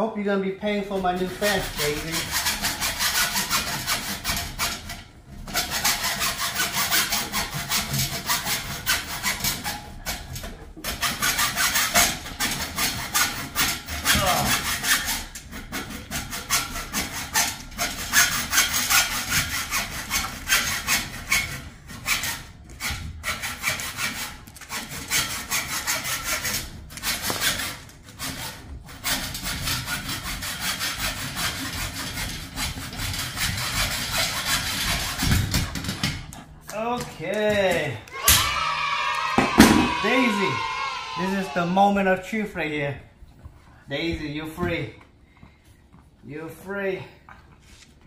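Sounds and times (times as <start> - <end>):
hacksaw cutting metal: 0.9 - 36.4.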